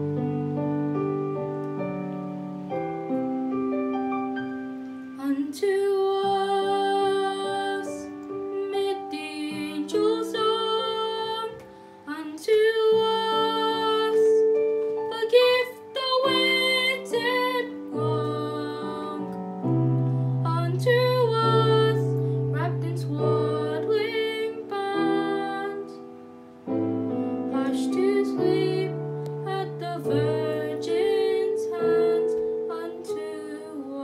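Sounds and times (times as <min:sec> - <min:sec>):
piano accompaniment: 0:00.0 - 0:34.0.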